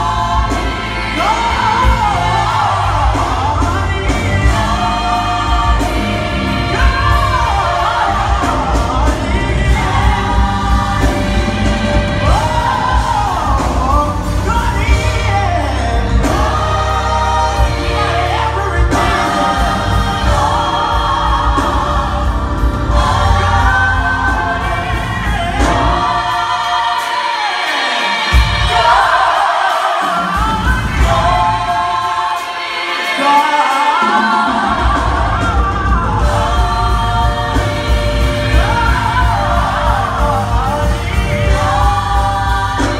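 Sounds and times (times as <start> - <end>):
gospel choir singing: 0.0 - 42.9
lead vocalist singing: 0.0 - 42.9
live band accompaniment: 0.0 - 42.9.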